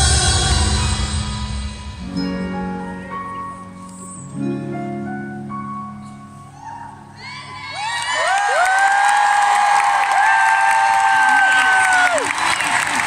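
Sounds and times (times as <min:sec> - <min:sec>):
audience cheering: 0:07.7 - 0:13.0.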